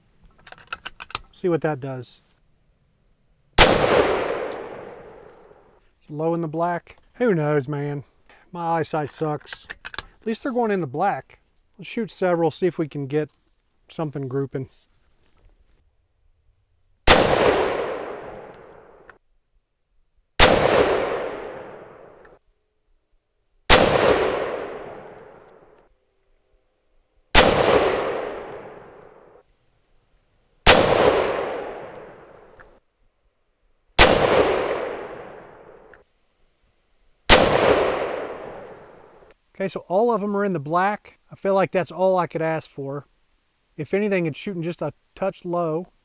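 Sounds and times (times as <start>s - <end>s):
rifle shots with echo: 3.6s - 5.6s, 17.1s - 19.1s, 20.4s - 22.2s, 23.7s - 25.6s, 27.3s - 29.4s, 30.6s - 32.6s, 34.0s - 35.9s, 37.3s - 39.2s.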